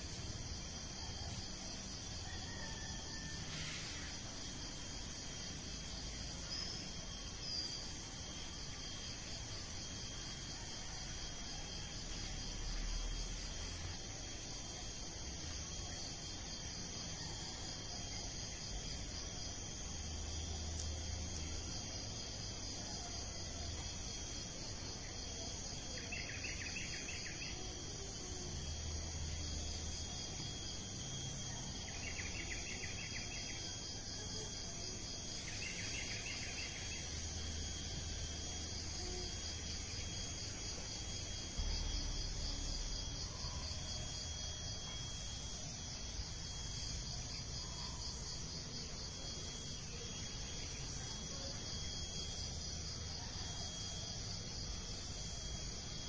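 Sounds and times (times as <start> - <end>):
insects trilling: 0.0 - 56.0.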